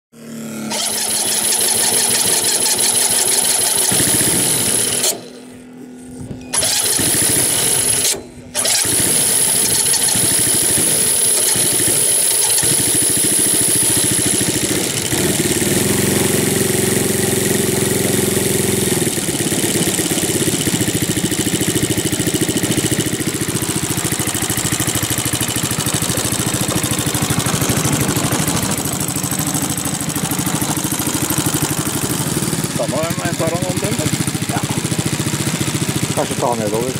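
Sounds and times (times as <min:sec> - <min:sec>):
model airplane engine running: 0:00.2 - 0:36.9.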